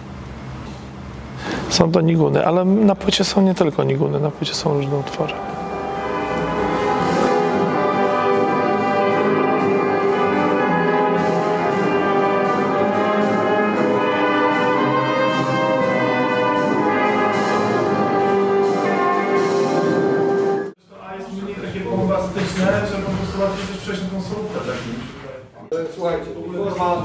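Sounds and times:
brass ensemble slow melody: 2.6s - 20.8s.

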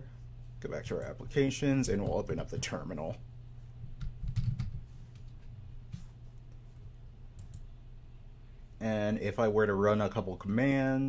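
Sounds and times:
low steady hum: 0.0s - 11.0s
typing on computer keyboard: 4.0s - 5.3s.

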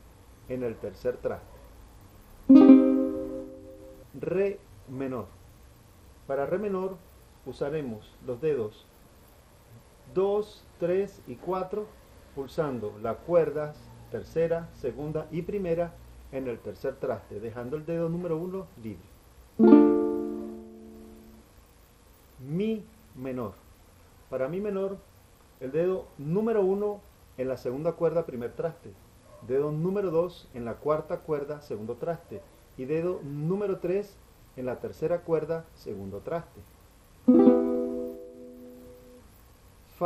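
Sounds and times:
strummed string chord: 2.5s - 4.0s, 19.6s - 21.4s, 37.3s - 39.2s.

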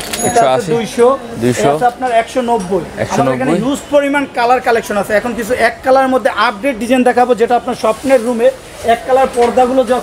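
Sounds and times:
man talking: 0.2s - 10.0s.

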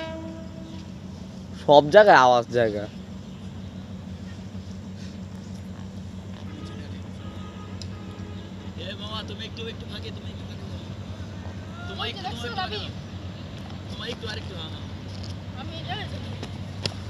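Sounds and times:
low hum: 0.0s - 11.8s
people talking: 1.6s - 2.9s, 8.8s - 10.8s, 13.9s - 14.9s, 15.6s - 16.5s.

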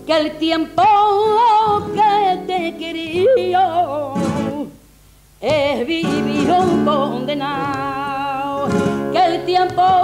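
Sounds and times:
flamenco guitar: 0.0s - 4.8s, 5.4s - 10.0s
woman singing flamenco: 0.0s - 4.8s, 5.4s - 10.0s.

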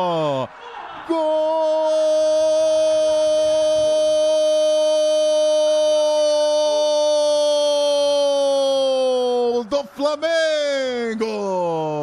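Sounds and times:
man shouting goal cry: 0.0s - 12.0s.

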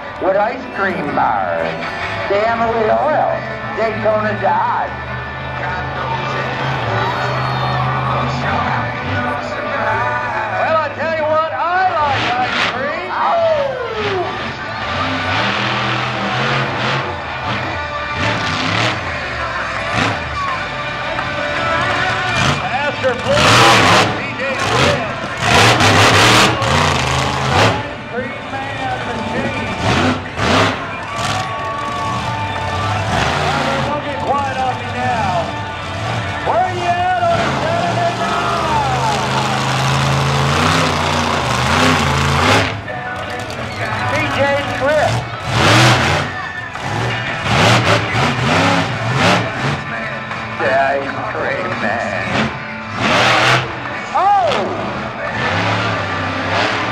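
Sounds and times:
announcer on public address: 0.0s - 15.6s, 16.2s - 52.8s, 53.8s - 56.3s
monster truck engine revving: 0.0s - 56.9s
music: 0.0s - 56.9s.

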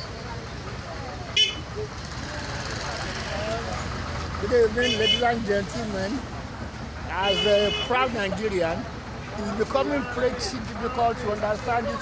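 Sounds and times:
distant voices: 0.0s - 12.0s
street traffic rumbling: 0.0s - 12.0s.

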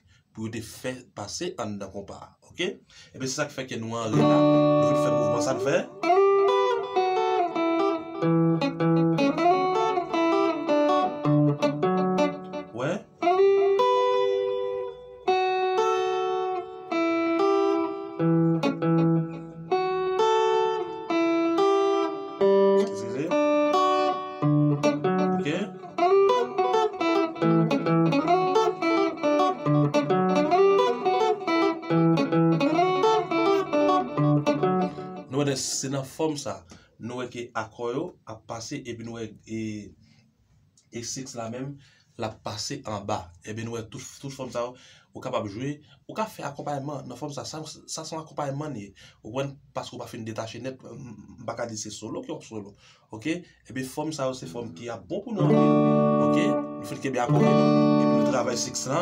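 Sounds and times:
electric guitar picking groove: 4.1s - 35.5s, 55.4s - 59.0s.

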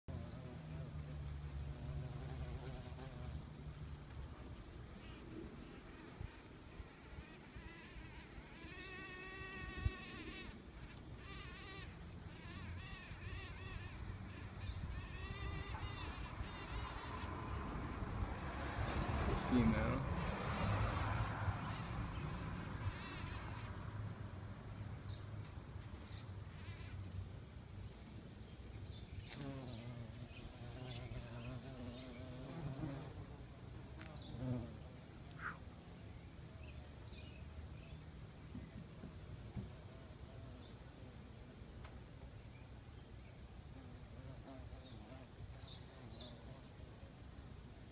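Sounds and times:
bee buzzing in flight: 5.8s - 23.7s.

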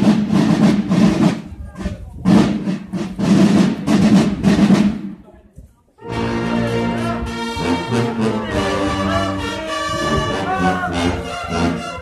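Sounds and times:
marching snare and field drums: 0.0s - 5.2s.

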